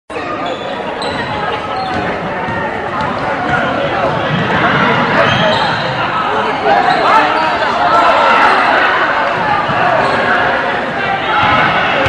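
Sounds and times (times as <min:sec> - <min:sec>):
crowd chatter echoing: 0:00.1 - 0:12.0.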